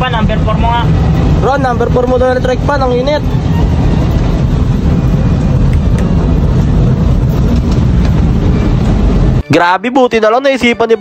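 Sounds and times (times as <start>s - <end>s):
engine and road rumble: 0.0s - 11.0s.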